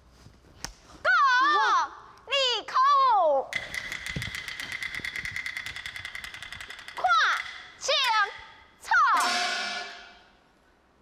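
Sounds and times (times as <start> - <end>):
fast percussion roll: 3.5 - 8.4.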